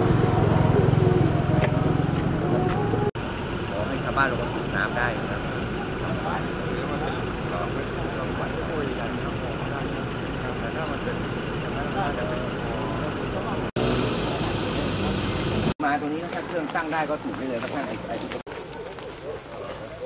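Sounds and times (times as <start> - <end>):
vehicle engine idling: 0.0 - 20.0.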